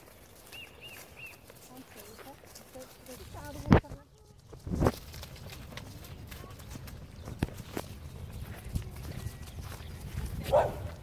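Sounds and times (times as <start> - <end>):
pony hooves thudding on grass: 0.0 - 11.0
low rumble of movement: 3.0 - 11.0.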